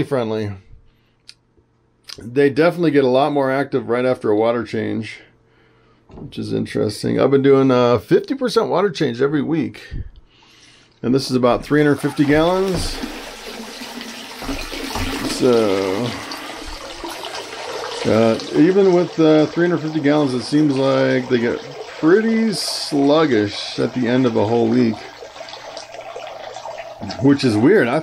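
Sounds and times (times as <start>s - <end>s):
water running and splashing: 11.6s - 28.0s.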